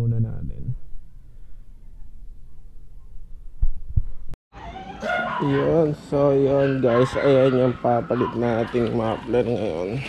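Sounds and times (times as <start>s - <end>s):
dull low thumps: 0.0s - 4.4s.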